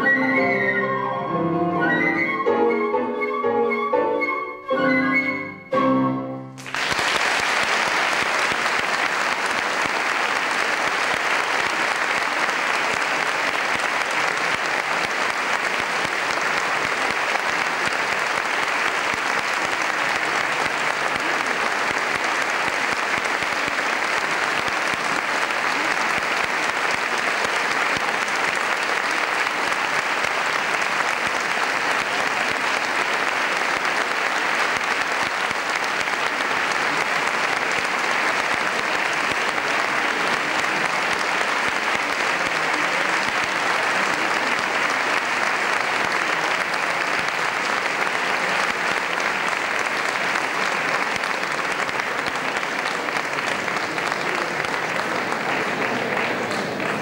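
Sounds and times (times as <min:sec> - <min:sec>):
audience applauding: 0:06.6 - 0:57.0.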